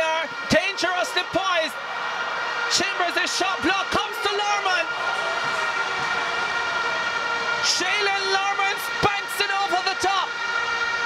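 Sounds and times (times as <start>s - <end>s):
horns blowing steady tones: 0.0s - 11.0s
stadium crowd noise: 0.0s - 11.0s.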